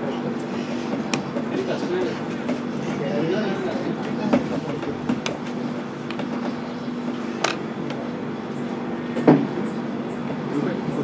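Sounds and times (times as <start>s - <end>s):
faint voices: 0.0s - 11.0s
steady low hum: 0.0s - 11.0s.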